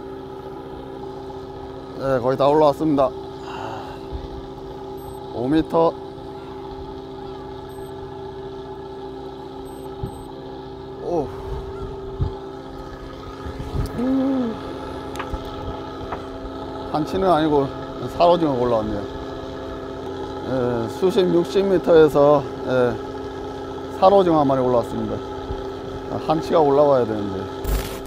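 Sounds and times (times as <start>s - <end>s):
boat engine humming: 0.0s - 28.0s.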